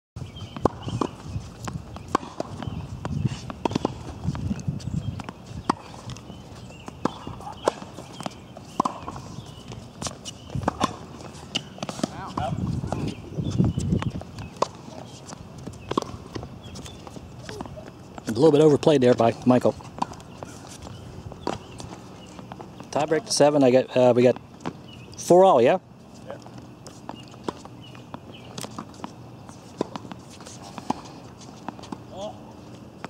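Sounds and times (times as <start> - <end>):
tennis ball bounces: 0.4 - 23.3, 26.5 - 32.3.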